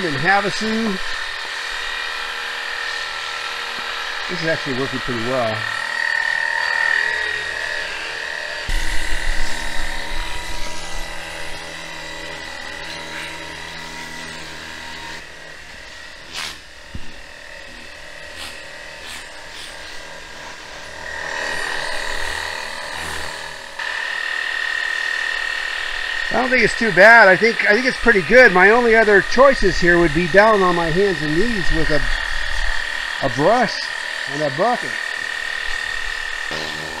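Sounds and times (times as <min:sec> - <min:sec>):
electric pump whining: 0:00.0 - 0:37.0.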